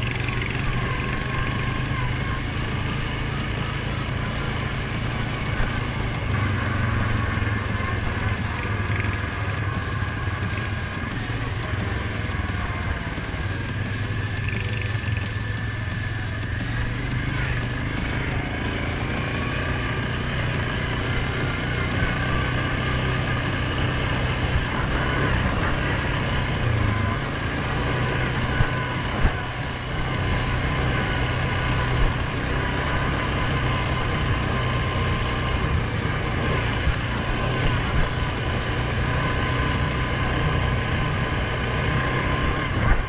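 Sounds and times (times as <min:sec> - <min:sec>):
atv engine droning: 0:00.0 - 0:43.0.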